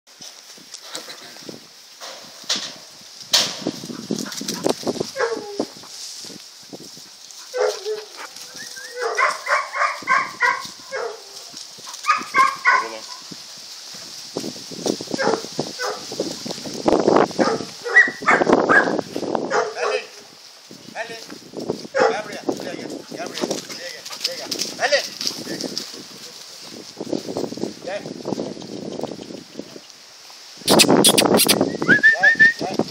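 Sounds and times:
dogs barking and yelping: 0:03.9 - 0:06.0, 0:07.4 - 0:13.2, 0:15.2 - 0:16.1, 0:17.4 - 0:20.2, 0:30.7 - 0:31.6.

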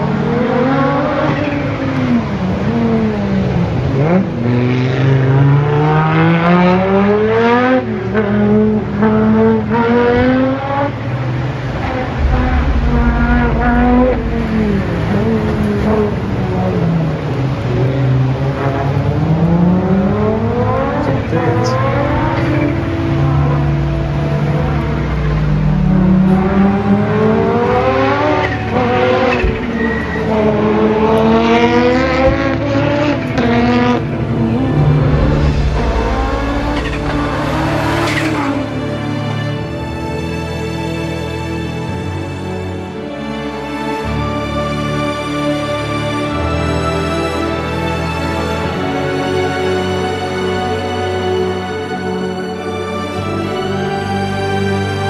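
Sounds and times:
rally car engine revving hard: 0:00.0 - 0:39.2.

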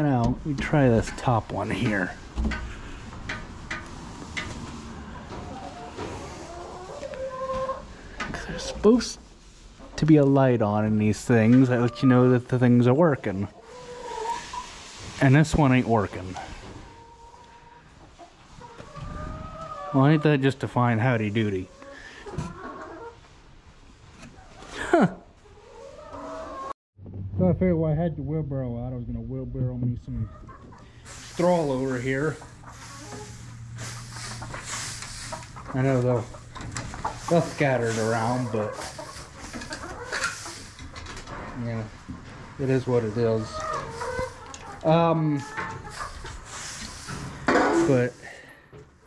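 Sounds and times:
hens calling: 0:00.0 - 0:09.0, 0:09.8 - 0:14.9, 0:30.1 - 0:48.5
low rustling: 0:30.8 - 0:48.6.

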